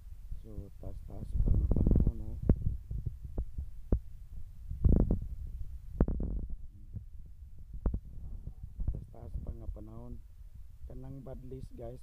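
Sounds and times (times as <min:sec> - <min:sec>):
microphone handling thumps and clicks: 0:01.1 - 0:10.1.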